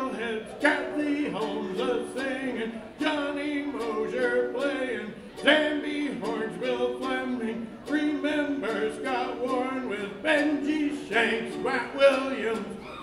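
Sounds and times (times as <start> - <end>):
man singing a melodic chant: 0.0 - 12.8
mandolin: 0.0 - 13.0.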